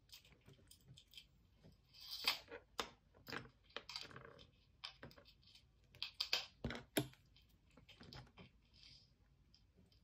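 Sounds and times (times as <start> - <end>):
wooden pencils clicking and tapping: 2.0 - 8.6.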